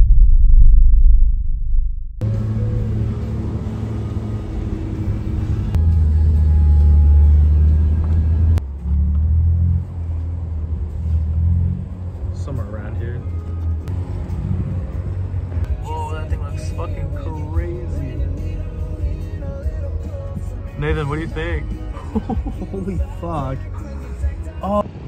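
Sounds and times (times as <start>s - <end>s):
loud deep rumble: 0.0s - 5.9s.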